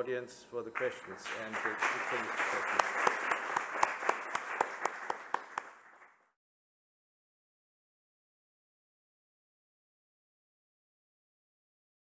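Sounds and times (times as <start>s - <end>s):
audience applauding: 0.8s - 6.2s.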